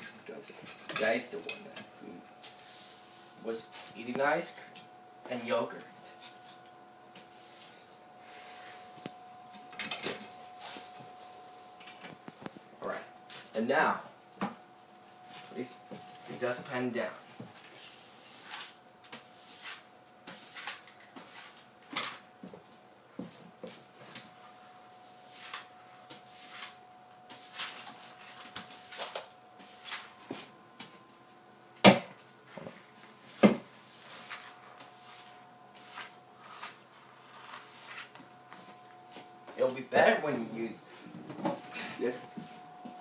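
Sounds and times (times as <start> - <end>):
broom sweeping wooden floor: 2.4 - 4.2, 6.1 - 9.2, 10.2 - 12.6, 17.3 - 21.7, 23.6 - 31.3, 32.4 - 39.7.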